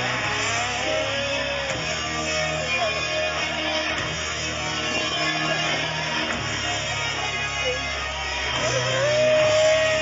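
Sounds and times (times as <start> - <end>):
electric guitar bending notes: 0.0 - 10.0
live heavy metal band: 0.0 - 10.0.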